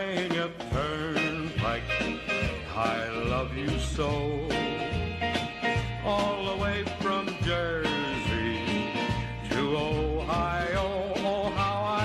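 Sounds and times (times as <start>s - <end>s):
guitar accompaniment: 0.0s - 12.0s
man singing country song: 0.0s - 12.0s.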